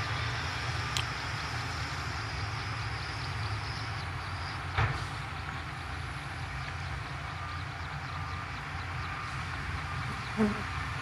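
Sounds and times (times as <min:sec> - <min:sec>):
bulldozer engine rumbling: 0:00.0 - 0:11.0.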